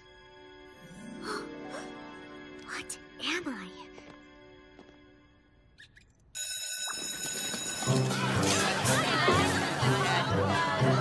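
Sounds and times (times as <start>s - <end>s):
music: 0.0s - 5.8s, 7.6s - 11.0s
electric school bell ringing: 6.4s - 9.0s
hallway chatter: 7.5s - 11.0s.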